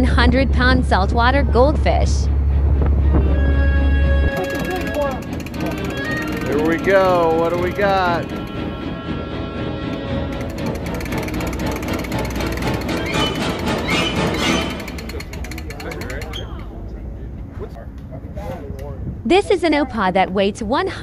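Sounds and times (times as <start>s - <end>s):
steady low rumble: 0.0s - 4.3s, 16.7s - 21.0s
music: 0.0s - 16.2s
indistinct voices: 3.0s - 21.0s.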